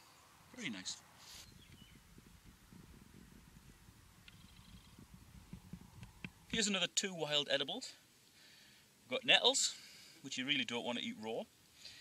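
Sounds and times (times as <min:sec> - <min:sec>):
faint low rumble: 0:00.0 - 0:06.7.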